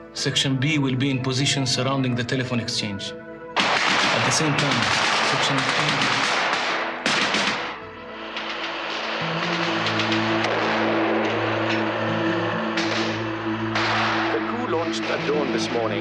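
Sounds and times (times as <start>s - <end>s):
dramatic orchestral chords: 3.2s - 16.0s
gunfire: 3.6s - 9.2s, 12.8s - 15.5s.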